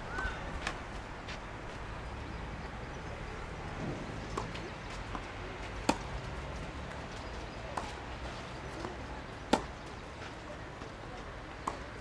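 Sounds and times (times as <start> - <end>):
tennis racket hitting ball: 9.5 - 9.7.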